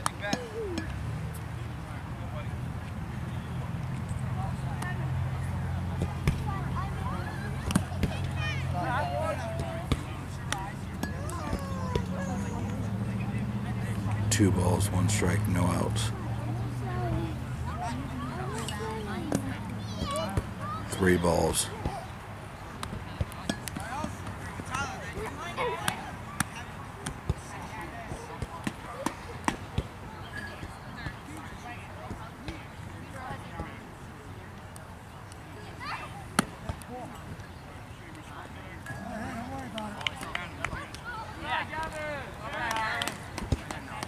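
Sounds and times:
voices calling out: 3.3s - 33.9s.

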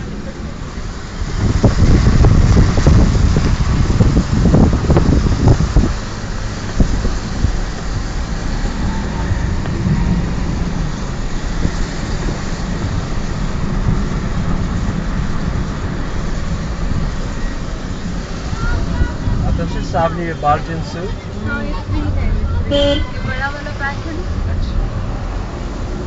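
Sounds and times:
car engine and road noise: 0.0s - 26.0s.

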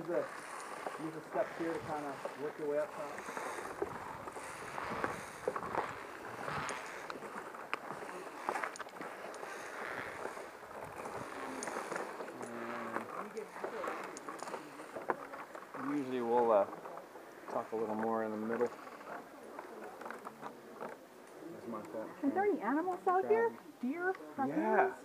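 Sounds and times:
footsteps on wooden planks: 0.0s - 21.0s
faint voices: 0.0s - 25.0s.

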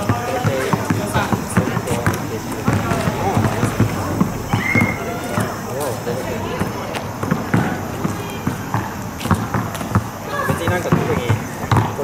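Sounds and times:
basketball bouncing on asphalt: 0.0s - 12.0s
voices talking: 0.0s - 12.0s.

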